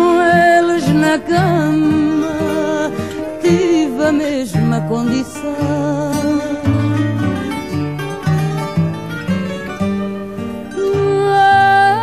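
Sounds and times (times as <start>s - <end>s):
woman singing: 0.0s - 7.8s, 10.7s - 12.0s
plucked guitar: 0.0s - 12.0s.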